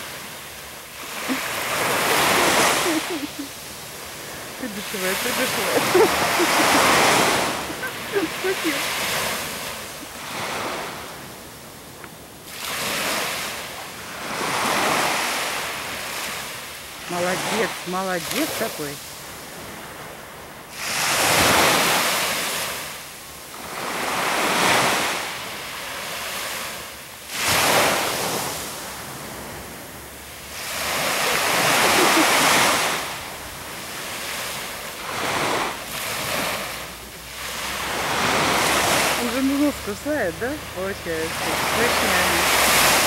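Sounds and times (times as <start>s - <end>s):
surf washing onto beach: 0.0s - 43.0s.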